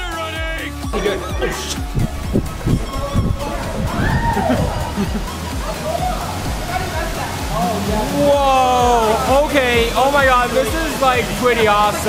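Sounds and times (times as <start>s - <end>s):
excited voices: 0.0s - 12.0s
water rushing down rock waterfall: 1.0s - 12.0s.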